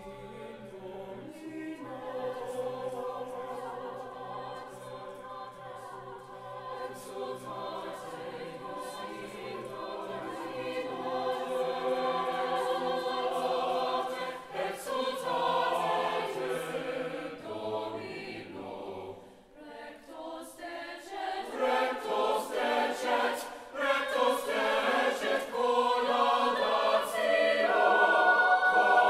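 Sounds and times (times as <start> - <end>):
choir singing sustained chords: 0.0 - 29.0.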